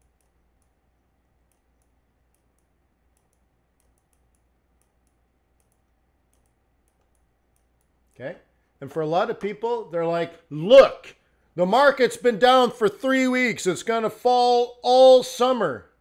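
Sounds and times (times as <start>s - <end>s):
computer mouse clicks: 0.0s - 8.2s
faint low hum: 0.0s - 13.1s.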